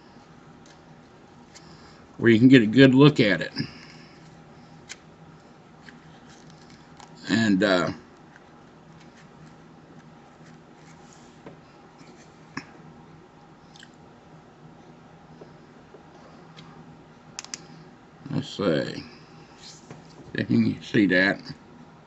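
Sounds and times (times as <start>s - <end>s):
low steady hum: 0.0s - 22.0s
small clicks and taps: 17.4s - 17.6s.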